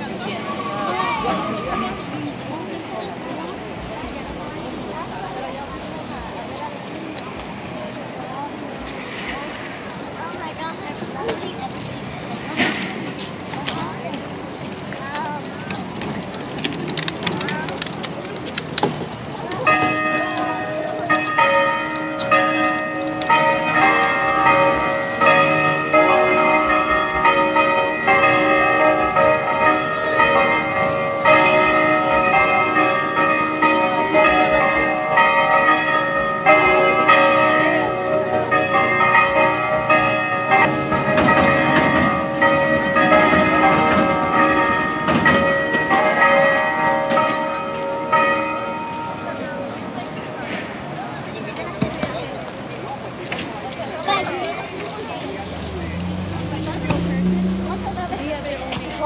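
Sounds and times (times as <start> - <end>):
church bells ringing: 19.4 - 50.8.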